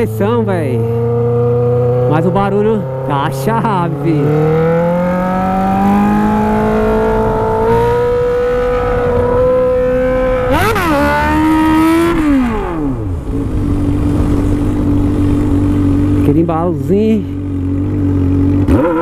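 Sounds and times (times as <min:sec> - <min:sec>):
motorcycle engine revving: 0:00.0 - 0:19.0.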